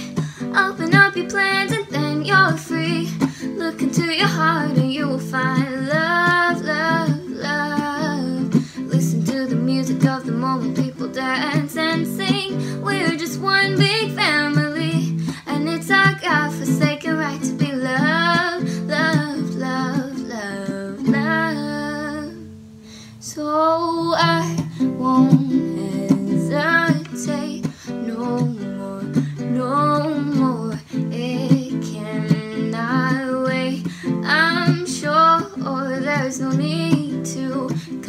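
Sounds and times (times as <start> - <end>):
ukulele strumming: 0.0 - 22.5, 23.7 - 38.0
woman singing: 0.0 - 38.0.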